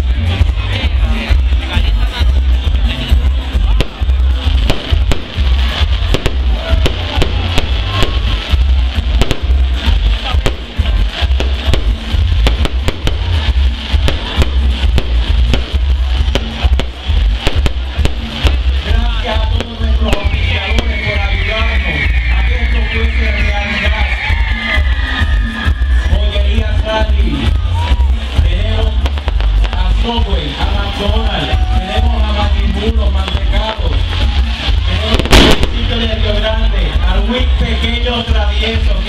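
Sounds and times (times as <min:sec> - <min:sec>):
fireworks crackling and popping: 0:00.0 - 0:39.0
music with heavy bass beat: 0:00.0 - 0:39.0.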